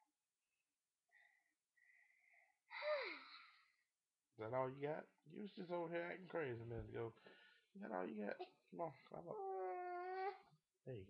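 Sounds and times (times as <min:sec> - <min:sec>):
child whining: 0:02.7 - 0:03.4, 0:09.3 - 0:10.5.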